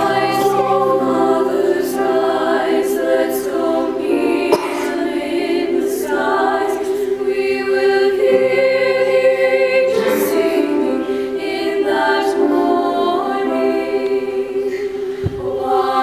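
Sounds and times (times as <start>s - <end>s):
choir singing sustained chords: 0.0s - 16.0s.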